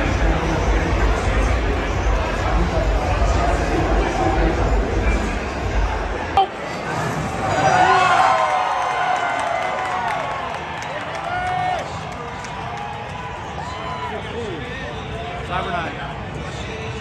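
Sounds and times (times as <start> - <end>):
crowd shouting and cheering: 0.0 - 17.0.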